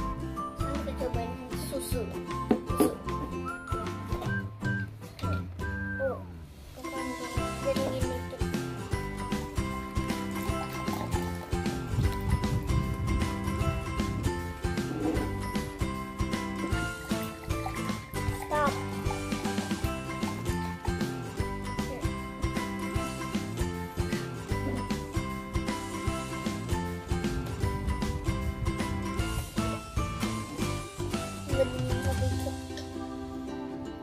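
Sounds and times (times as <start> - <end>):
background music with steady beat: 6.8 - 34.0
milk pouring into a glass: 9.9 - 12.4.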